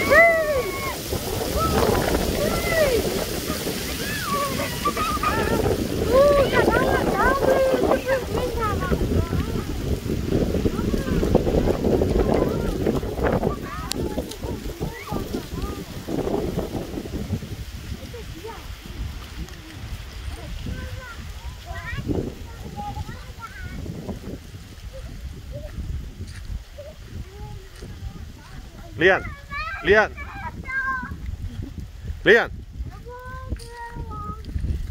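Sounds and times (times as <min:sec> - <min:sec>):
wind gusting on microphone: 0:00.0 - 0:34.9.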